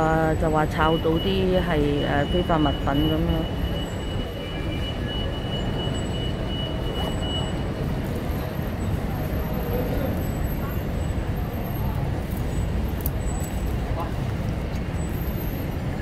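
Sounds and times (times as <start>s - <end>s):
traffic rumble: 0.0s - 16.0s.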